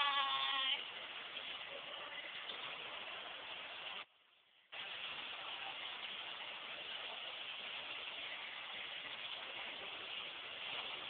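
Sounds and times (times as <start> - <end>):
steady noisy hiss: 0.0 - 11.0.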